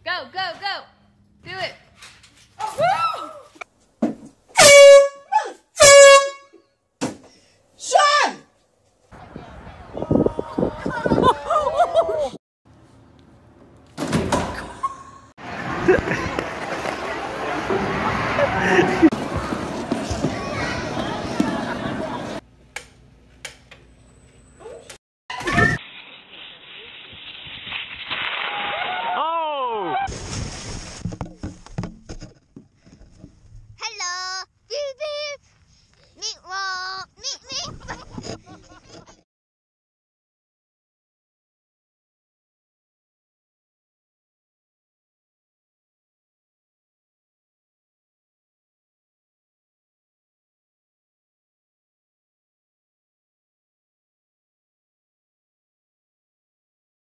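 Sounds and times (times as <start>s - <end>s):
woman shrieking: 2.6s - 3.6s
air horn blasts: 4.5s - 6.6s.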